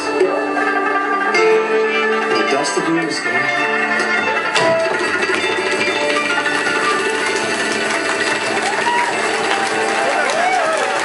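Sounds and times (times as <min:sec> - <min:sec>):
acoustic band playing: 0:00.0 - 0:11.0.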